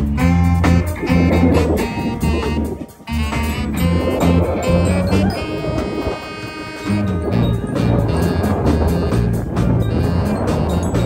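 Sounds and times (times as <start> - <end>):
brass horn and saxophone: 0.0 - 11.0
drums: 0.0 - 11.0
live band playing: 0.0 - 11.0
pulsing bass line: 0.0 - 11.0.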